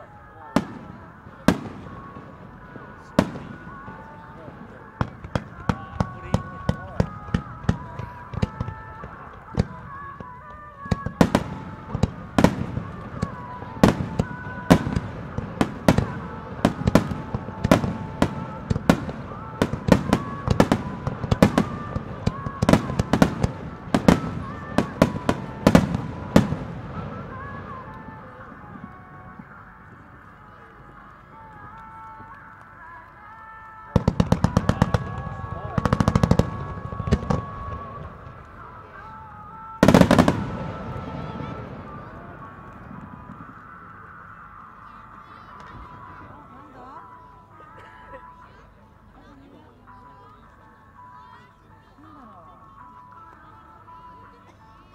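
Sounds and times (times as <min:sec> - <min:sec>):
music with long held notes: 0:00.0 - 0:54.9.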